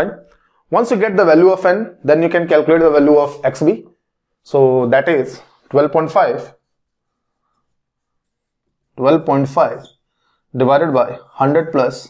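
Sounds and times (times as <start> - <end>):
marker writing on whiteboard: 5.0 - 11.8.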